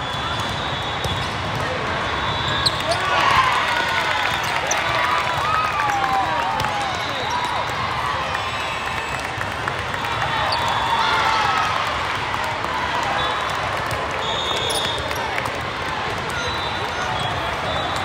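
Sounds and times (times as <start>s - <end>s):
crowd voices: 0.0s - 18.0s
shoes squeaking on court floor: 2.5s - 3.2s, 14.3s - 15.3s.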